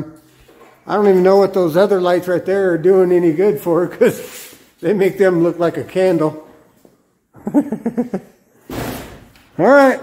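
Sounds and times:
man laughing: 7.3 - 8.4.

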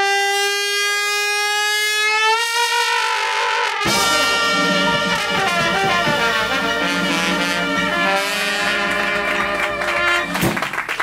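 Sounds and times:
brass horn long note: 0.0 - 10.8
jazz band playing: 2.4 - 11.0.

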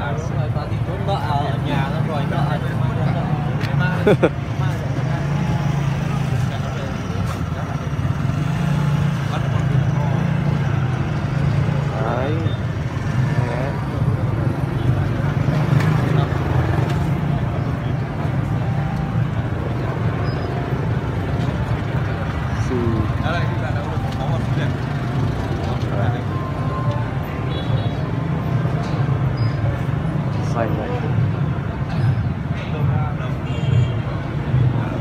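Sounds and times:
people talking: 0.0 - 10.8, 11.7 - 12.6, 13.2 - 14.0, 22.5 - 27.2.

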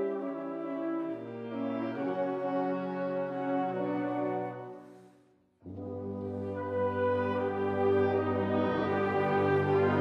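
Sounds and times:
wind ensemble holding a chord: 0.0 - 10.0.

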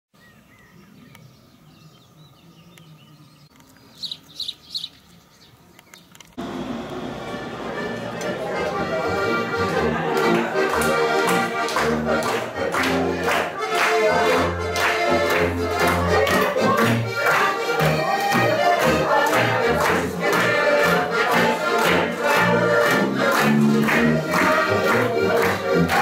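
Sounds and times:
bird chirps: 0.2 - 6.2
accordion band playing folk tune: 6.4 - 26.0.

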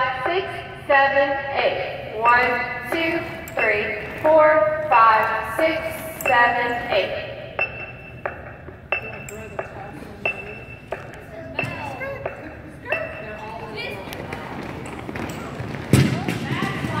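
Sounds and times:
background chatter of voices: 9.0 - 17.0.

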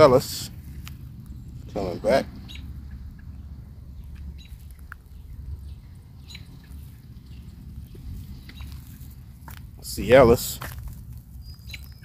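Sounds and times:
low wind rumble: 0.0 - 12.0
faint bird chirps: 1.3 - 8.8, 11.4 - 12.0
footsteps on dry straw: 7.8 - 12.0.

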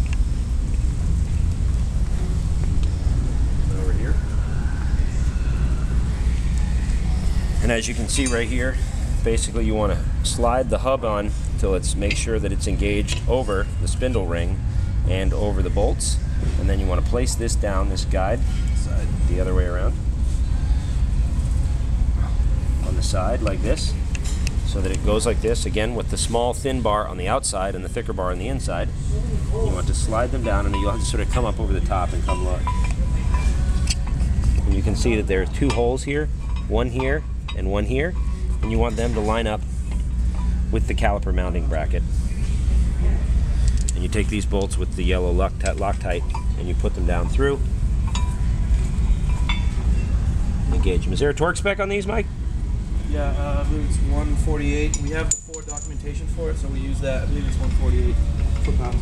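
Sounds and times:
low background rumble: 0.0 - 59.0
light metallic clinks: 54.9 - 56.1.

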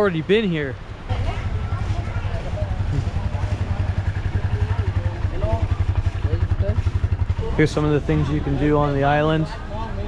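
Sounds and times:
faint voices: 0.0 - 10.0
motorcycle engine idling: 1.1 - 10.0.

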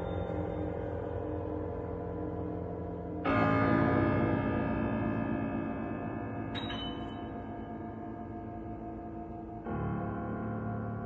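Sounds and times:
bell-like metallic tones: 6.6 - 7.4.

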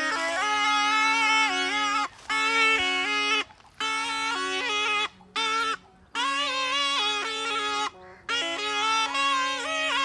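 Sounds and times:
snake charmer's pipe melody: 0.0 - 10.0.

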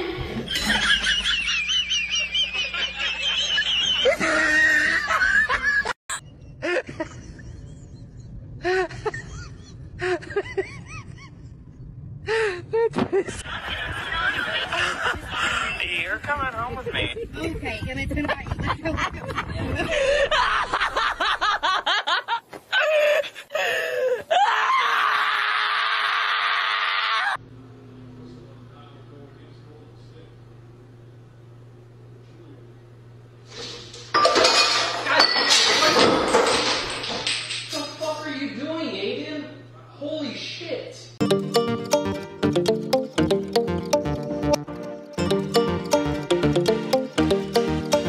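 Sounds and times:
high-pitched wavering laugh: 0.5 - 11.6.

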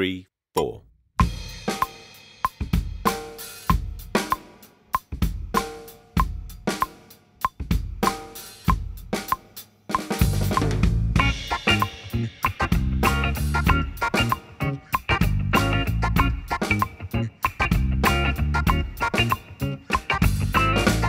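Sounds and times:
drum kit groove: 0.6 - 21.0.

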